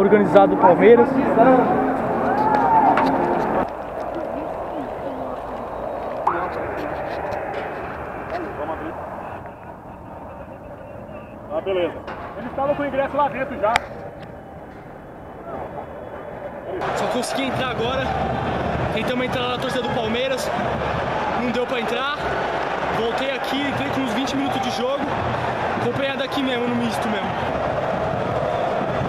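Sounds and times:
indistinct voices talking: 0:00.0 - 0:29.0
outdoor background noise: 0:00.0 - 0:29.0.

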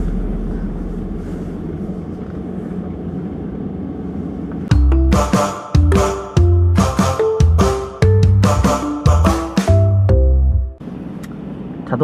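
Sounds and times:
car engine and road noise: 0:00.0 - 0:05.0, 0:10.7 - 0:12.0.

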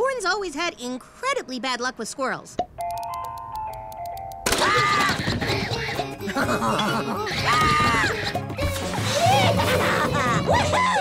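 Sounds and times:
music-box tune: 0:02.7 - 0:04.5
toy box springing open: 0:04.4 - 0:05.5.

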